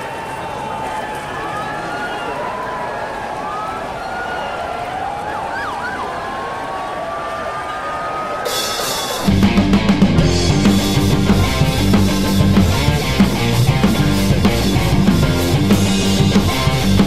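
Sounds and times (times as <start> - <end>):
sirens wailing: 0.0 - 17.0
traffic roar: 0.0 - 17.0.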